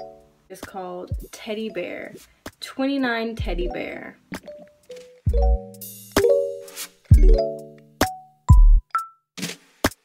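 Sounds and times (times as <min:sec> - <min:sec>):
beat with bass and synth chords: 0:05.3 - 0:06.2, 0:07.1 - 0:07.5, 0:08.5 - 0:08.9.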